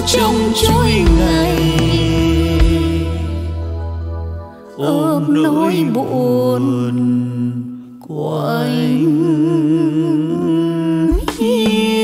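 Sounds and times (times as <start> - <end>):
man and woman singing duet: 0.0 - 3.5, 4.7 - 12.0
backing music: 0.0 - 6.3.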